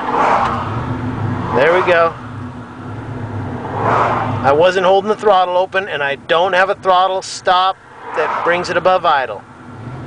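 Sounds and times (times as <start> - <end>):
pickup engine idling low drone: 0.5 - 10.0.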